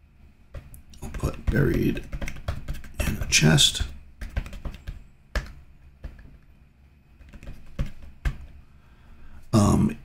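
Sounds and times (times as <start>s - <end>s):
typing on computer keyboard: 1.0s - 6.4s, 7.2s - 8.5s.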